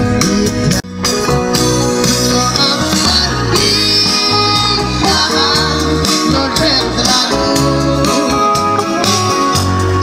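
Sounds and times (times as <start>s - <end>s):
bass guitar: 0.0s - 10.0s
electric keyboards: 0.0s - 10.0s.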